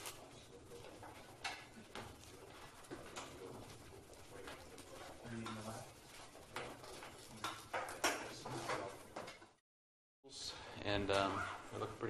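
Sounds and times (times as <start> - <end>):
soft knocks and rustles: 0.7 - 9.6.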